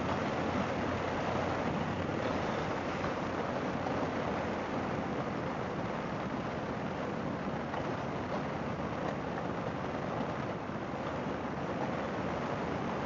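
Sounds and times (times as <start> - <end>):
wind and road noise: 0.0 - 13.0.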